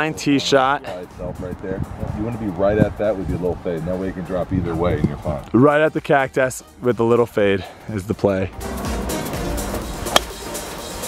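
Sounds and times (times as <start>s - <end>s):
background music: 0.0s - 11.0s
golf club striking ball: 10.1s - 10.5s.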